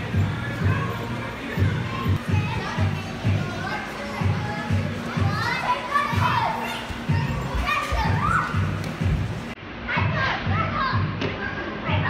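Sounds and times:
background music with steady beat: 0.0s - 12.0s
children's voices and squeals: 0.4s - 8.8s, 9.9s - 12.0s.

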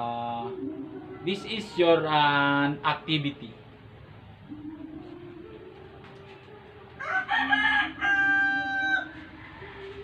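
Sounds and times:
rooster crowing: 7.0s - 10.0s.

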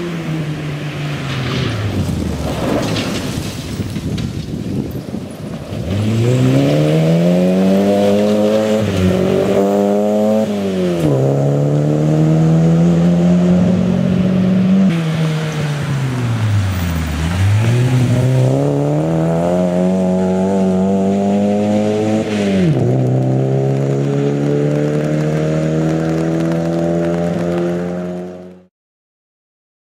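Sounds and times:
rally car engine revving: 5.5s - 28.7s.

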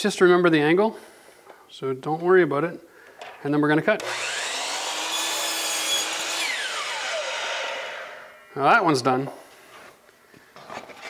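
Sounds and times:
saw blade cutting wood: 4.0s - 8.4s
miter saw whining: 4.0s - 8.5s.

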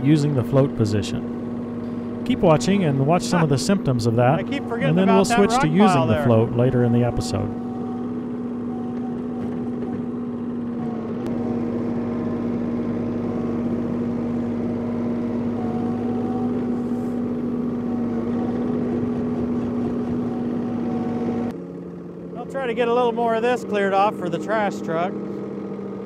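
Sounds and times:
tractor engine droning: 0.0s - 26.0s.

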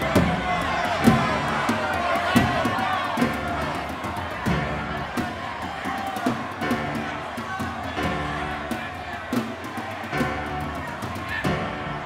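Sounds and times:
chorus singing: 0.0s - 12.0s.

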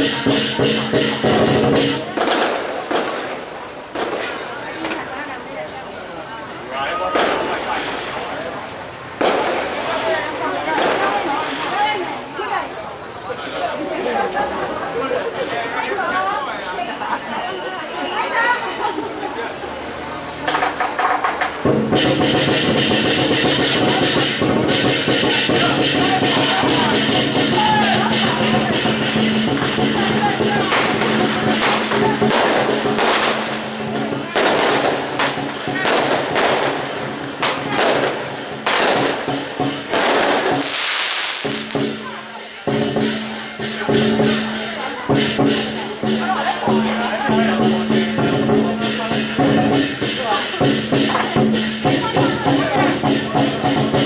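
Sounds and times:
firecrackers crackling: 0.0s - 13.2s, 18.9s - 54.0s
percussion: 0.0s - 54.0s.

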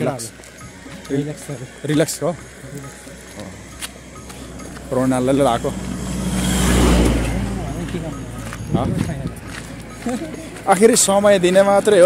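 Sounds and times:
car passing close by: 4.2s - 9.9s.

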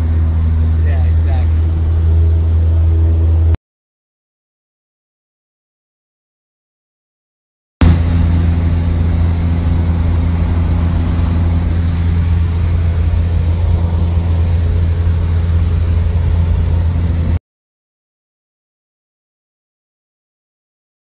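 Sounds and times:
propeller aircraft engine droning: 0.0s - 3.6s, 7.8s - 17.4s.

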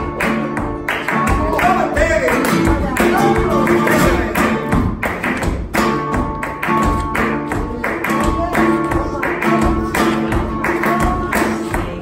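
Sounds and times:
hand-clapping: 0.0s - 12.0s
heel and toe footwork on stage: 0.0s - 12.0s
spanish guitar playing: 0.0s - 12.0s.

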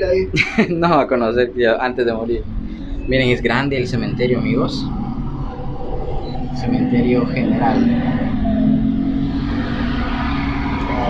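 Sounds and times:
cable car cabin rumble and hum: 0.0s - 11.0s.

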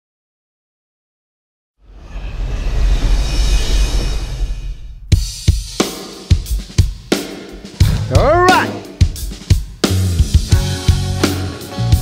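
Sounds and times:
kick and snare drum hits: 6.3s - 10.5s
deep bass: 7.8s - 9.1s.

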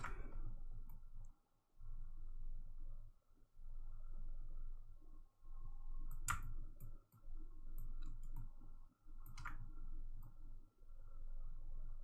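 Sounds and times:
computer mouse clicks: 6.1s - 8.5s, 9.2s - 10.4s.

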